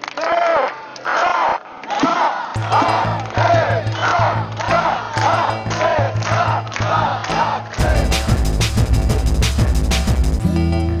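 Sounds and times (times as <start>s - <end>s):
crowd chanting: 0.4s - 8.7s
background music with bass: 2.6s - 11.0s.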